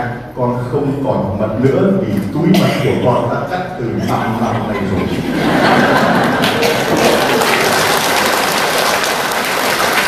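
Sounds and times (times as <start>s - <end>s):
crowd laughing: 4.0s - 9.0s
crowd clapping: 5.7s - 10.0s.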